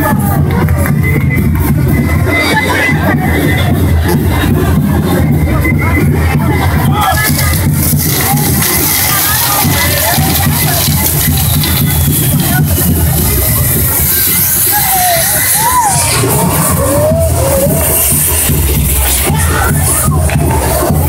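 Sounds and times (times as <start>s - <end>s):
crowd noise: 0.0s - 21.0s
loud music with heavy bass: 0.0s - 21.0s
fireworks hissing and crackling: 3.1s - 21.0s
rising and falling firework whistles: 10.4s - 19.1s.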